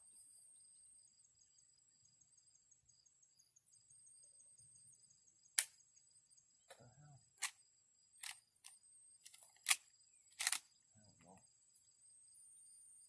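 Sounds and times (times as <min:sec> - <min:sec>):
insects chirring: 0:00.0 - 0:13.0
shotgun click: 0:10.4 - 0:10.7.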